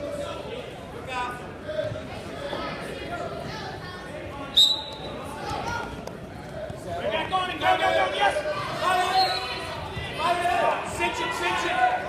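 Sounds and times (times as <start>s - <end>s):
voices and chatter: 0.0s - 12.0s
shrill referee's whistle blast: 4.6s - 5.1s.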